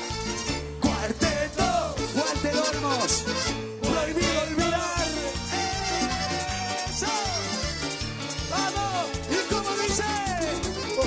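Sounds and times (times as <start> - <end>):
accordions: 0.0 - 11.0
percussion: 0.0 - 11.0
pulsing bass beat: 0.2 - 11.0.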